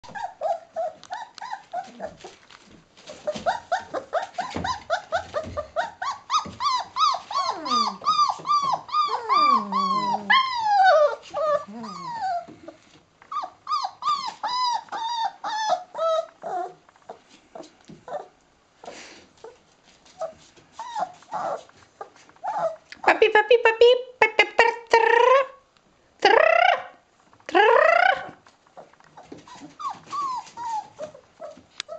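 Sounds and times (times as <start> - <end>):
puppies whining and squealing: 0.0 - 2.4, 3.0 - 22.9, 27.9 - 31.9.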